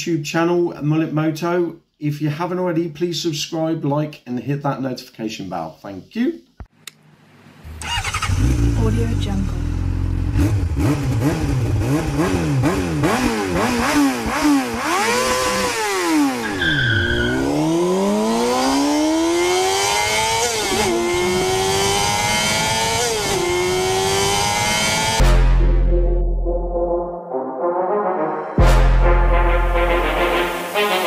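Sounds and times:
motorcycle engine revving: 7.6s - 25.7s
music with heavy bass: 25.2s - 27.4s, 28.6s - 31.0s.

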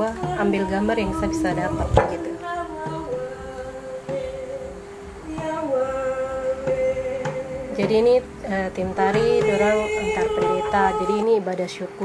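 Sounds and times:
women singing long held notes: 0.0s - 11.9s.

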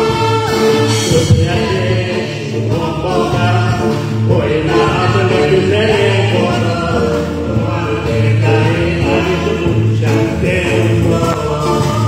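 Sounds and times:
instrumental backing with bass: 0.0s - 12.0s
voices singing long notes: 0.0s - 12.0s.

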